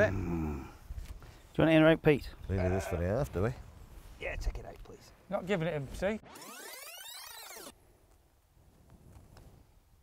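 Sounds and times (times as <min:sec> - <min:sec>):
quiet outdoor ambience: 0:00.0 - 0:10.0
swoosh rising and falling: 0:06.2 - 0:07.7.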